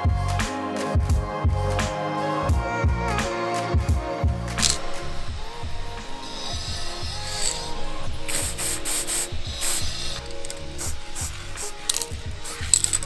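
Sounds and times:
background music: 0:00.0 - 0:13.0
spray can hissing and rattling: 0:06.2 - 0:13.0.

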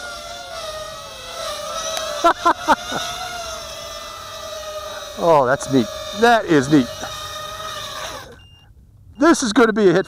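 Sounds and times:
drone motors whining: 0:00.0 - 0:09.9.

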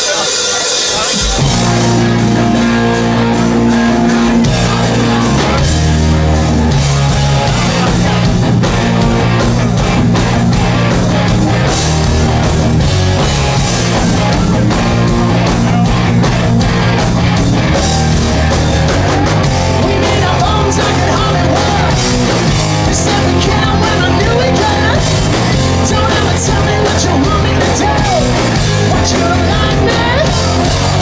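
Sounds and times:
bass guitar: 0:00.0 - 0:31.0
distorted electric guitars: 0:00.0 - 0:31.0
drum kit beat: 0:00.0 - 0:31.0.

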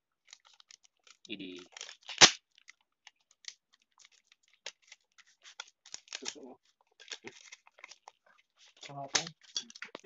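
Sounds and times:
thin sheet crackling: 0:00.2 - 0:10.0.

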